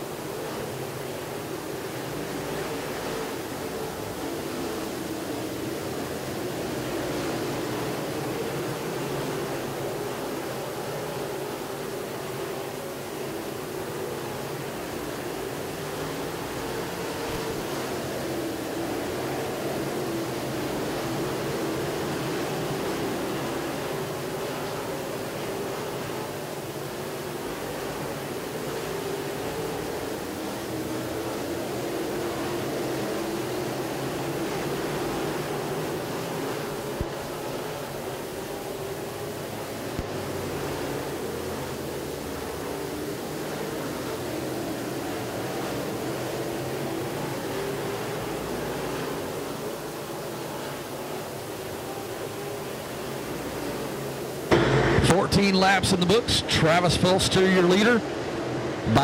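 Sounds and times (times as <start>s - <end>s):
race car engines droning: 0.1s - 59.0s.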